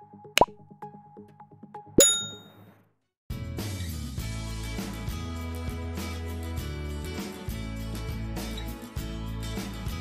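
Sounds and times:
bell-like chime: 2.0 - 2.5.

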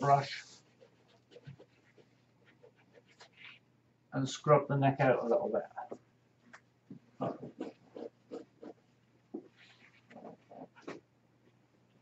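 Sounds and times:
brush scrubbing on paper: 0.0 - 3.6, 7.4 - 8.9.

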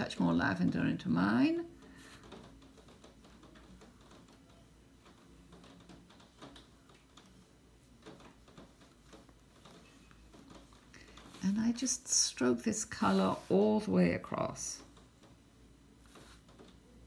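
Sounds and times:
brush scratching on paper: 10.6 - 14.0.

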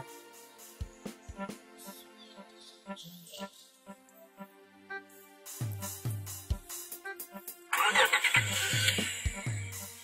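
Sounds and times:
music with bass-drum beat: 0.0 - 1.6, 5.5 - 10.0
car engine starting: 7.7 - 9.8.

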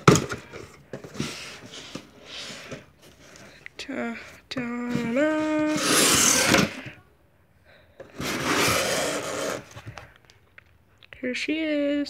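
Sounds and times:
cardboard box flap scraping open: 8.1 - 9.8.

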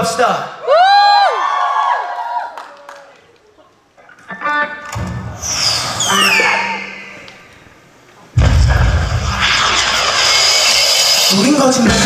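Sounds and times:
rock band playing: 11.3 - 12.0.

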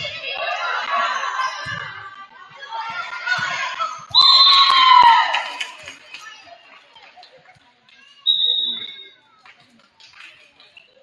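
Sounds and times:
referee's whistle blast: 8.3 - 9.0.

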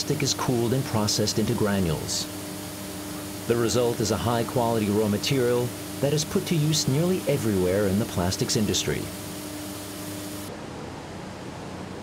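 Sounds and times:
machinery hum and hiss: 0.0 - 12.0.

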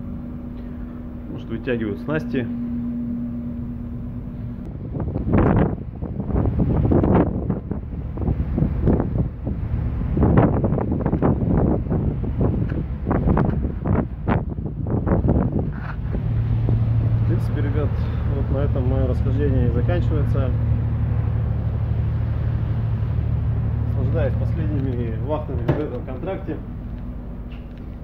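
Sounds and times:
ship low rumble: 0.0 - 28.0
steady hum: 0.0 - 28.0
wind buffeting microphone: 0.0 - 28.0.

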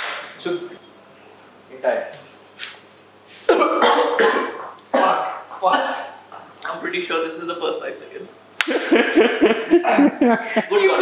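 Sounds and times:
man coughing hard: 3.5 - 6.2.

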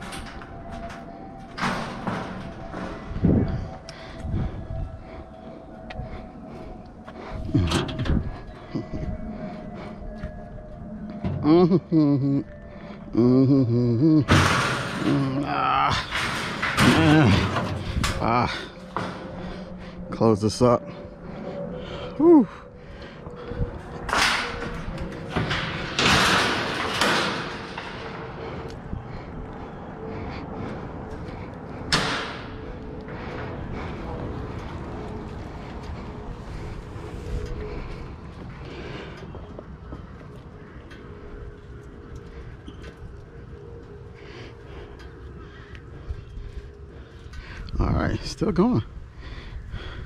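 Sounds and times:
metal gate clank: 14.3 - 18.3, 24.1 - 28.4
metal mesh gate rattling: 14.3 - 19.3, 24.0 - 28.4.

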